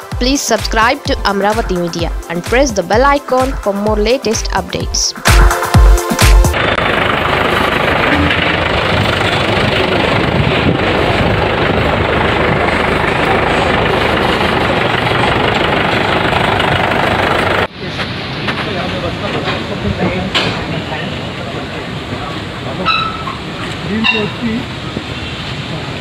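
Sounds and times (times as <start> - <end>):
voices: 0.2 - 5.2
truck engine idling: 5.6 - 17.7.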